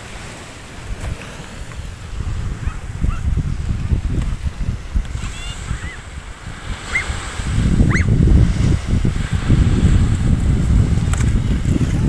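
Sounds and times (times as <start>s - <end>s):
small waves breaking on sand: 0.0s - 12.0s
wind buffeting microphone: 0.0s - 12.0s.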